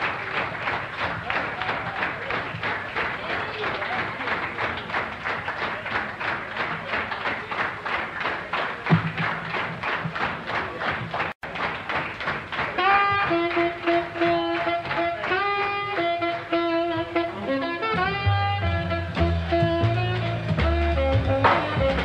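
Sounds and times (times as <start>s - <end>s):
jazz band playing: 12.6s - 22.0s
tenor saxophone melody: 12.8s - 22.0s.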